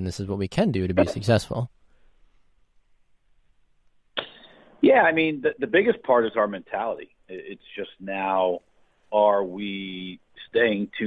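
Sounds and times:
man speaking over phone: 0.0 - 1.7.

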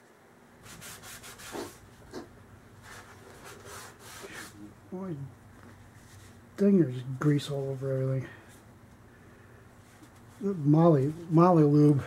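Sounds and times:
cloth wiping metal part: 0.6 - 4.8.

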